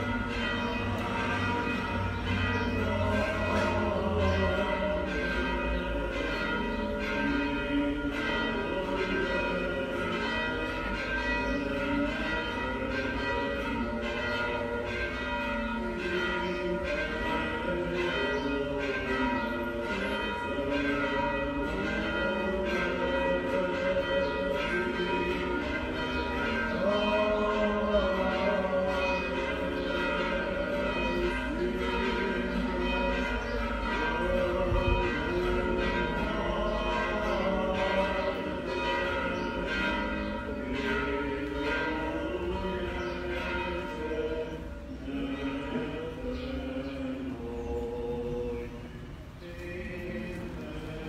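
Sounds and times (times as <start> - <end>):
church bells pealing: 0.0 - 51.0.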